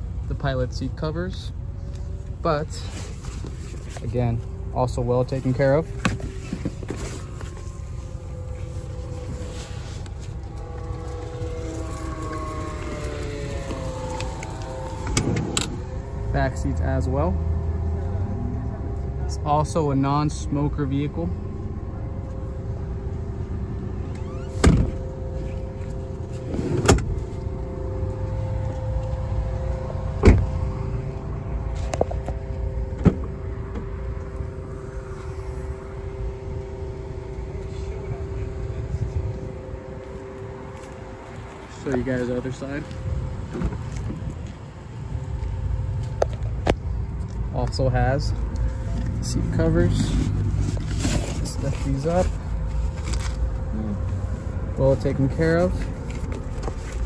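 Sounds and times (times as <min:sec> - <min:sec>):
car engine idling: 0:00.0 - 0:57.0
faint wavering hum: 0:00.0 - 0:57.0
car doors shutting: 0:13.4 - 0:15.9, 0:24.1 - 0:25.1, 0:26.4 - 0:27.3, 0:30.1 - 0:30.7.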